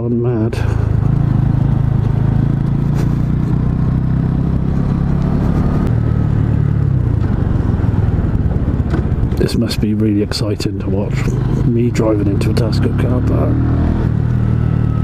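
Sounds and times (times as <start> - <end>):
motorcycle engine running: 0.3 - 15.0.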